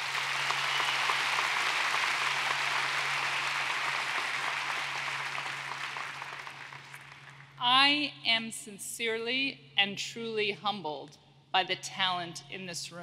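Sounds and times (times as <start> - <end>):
crowd applauding: 0.0 - 7.6.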